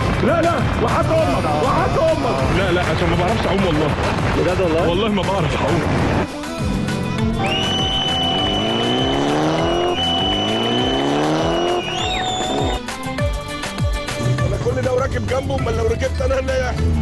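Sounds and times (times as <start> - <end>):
music: 0.0 - 17.0
car engine revving: 5.7 - 12.8.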